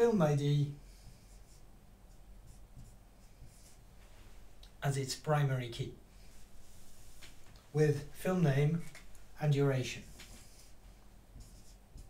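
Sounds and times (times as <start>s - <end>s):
marker scratching on whiteboard: 0.8s - 3.8s, 10.0s - 12.0s.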